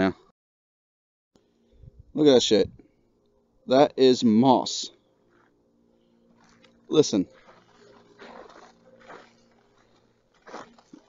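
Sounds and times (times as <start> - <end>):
footsteps crunching on moss: 6.4 - 11.0.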